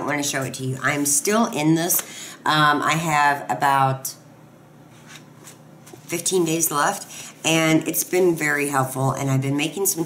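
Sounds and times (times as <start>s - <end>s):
book pages rustling: 4.9s - 6.6s.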